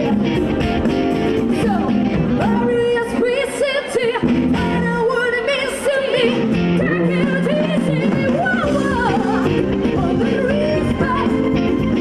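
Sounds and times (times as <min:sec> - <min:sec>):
rock band playing: 0:00.0 - 0:12.0
woman singing with vibrato: 0:01.4 - 0:12.0.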